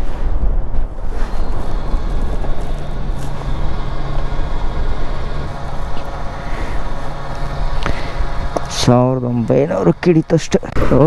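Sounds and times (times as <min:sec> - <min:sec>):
fuel pump humming and hissing: 0:00.8 - 0:11.0.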